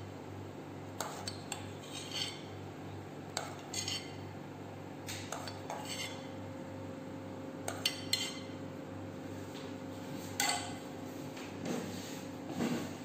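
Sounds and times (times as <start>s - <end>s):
steady low hum: 0.0s - 13.0s
cutlery clinking on plates: 10.4s - 10.8s.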